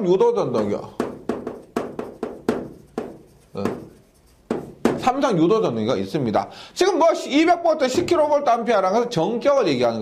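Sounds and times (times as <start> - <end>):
chalk tapping on chalkboard: 0.6 - 5.2.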